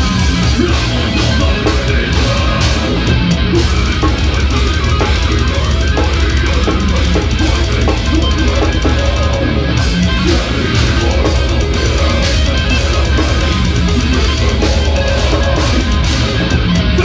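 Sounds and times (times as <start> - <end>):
distorted electric guitars: 0.0 - 17.0
drum kit playing: 0.0 - 17.0.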